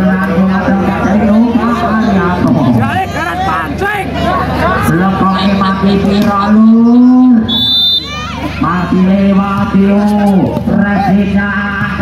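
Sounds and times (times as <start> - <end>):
referee's whistle blast: 7.4 - 8.2.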